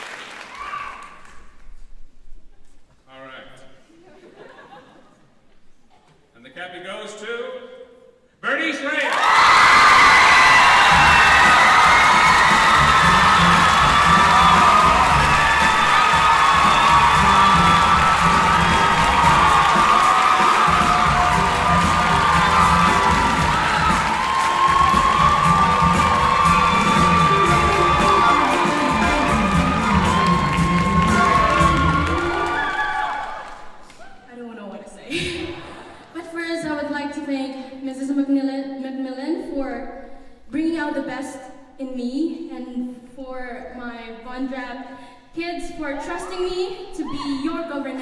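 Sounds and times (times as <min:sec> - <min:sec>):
audience cheering and shouting: 0:09.0 - 0:34.2
music playing: 0:09.7 - 0:33.4.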